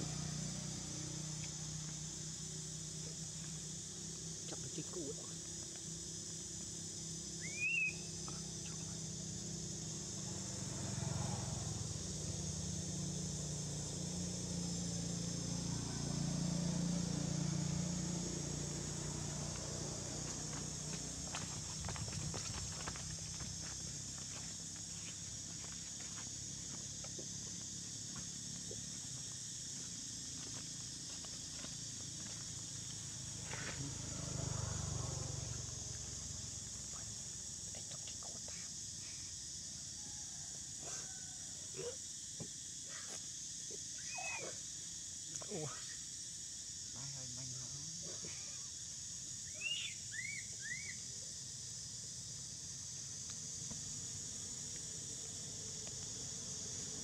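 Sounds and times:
high insect drone: 0.0 - 57.0.

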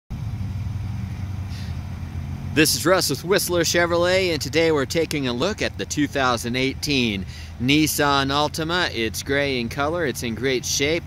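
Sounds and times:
vehicle engine idling: 0.1 - 11.0.

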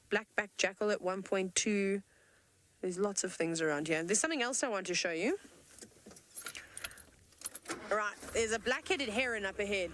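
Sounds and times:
woman speaking: 0.1 - 2.0, 2.8 - 5.4, 7.8 - 9.9
faint clinks and rattles: 5.5 - 8.8.

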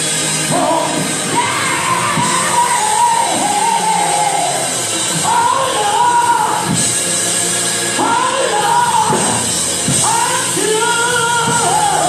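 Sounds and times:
gospel music with band: 0.0 - 12.0.

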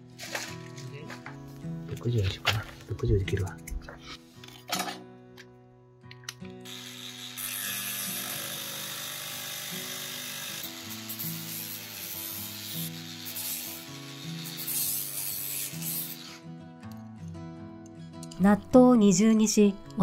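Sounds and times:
grinder cutting steel rod: 6.7 - 16.4.

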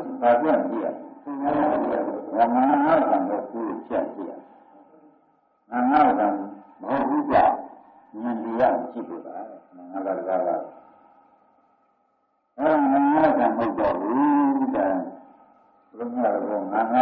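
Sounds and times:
man giving a sermon: 0.0 - 11.2, 12.6 - 17.0.

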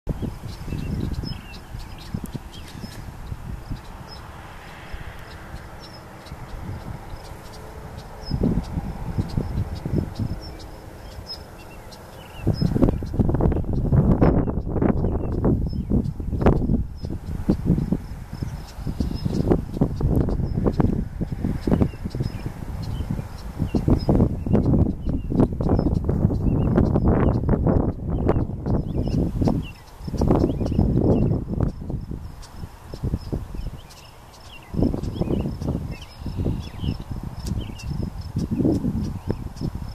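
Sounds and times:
wind rumbling on microphone: 0.0 - 39.9
small birds chirping: 0.1 - 39.9
faint bird chirps: 33.2 - 39.7.

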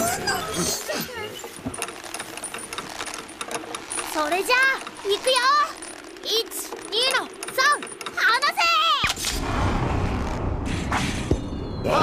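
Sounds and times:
mechanical clicking and rattling: 0.0 - 9.4.

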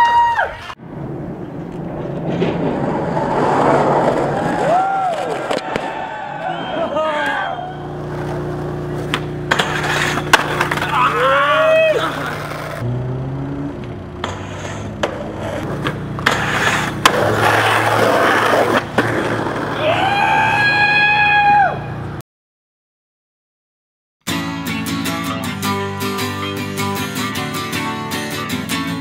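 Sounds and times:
skateboard wheels rolling on asphalt: 0.0 - 12.9, 13.5 - 22.2
person shouting: 6.4 - 7.8, 10.8 - 12.5, 19.8 - 21.9
skateboard clacks: 8.1 - 12.8, 14.2 - 19.9.

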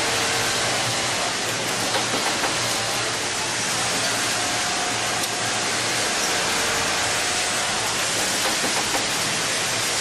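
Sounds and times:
sewing machinery running: 0.0 - 10.0.

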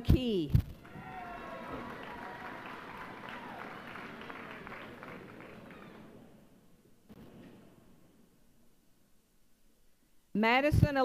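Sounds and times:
audience applauding: 0.8 - 6.4.

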